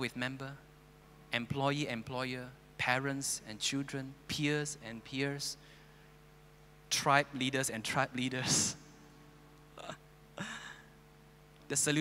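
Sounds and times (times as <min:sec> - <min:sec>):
man chuckling: 0:09.8 - 0:10.9.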